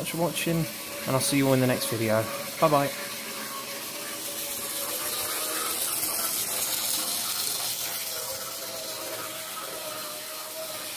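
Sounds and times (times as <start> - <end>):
small electric motor whirring: 0.0 - 10.9.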